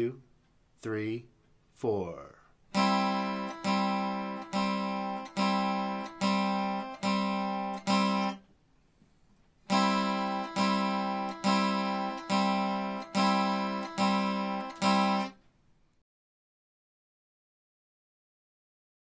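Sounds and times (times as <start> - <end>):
acoustic guitar strumming: 2.7 - 8.4, 9.6 - 15.4.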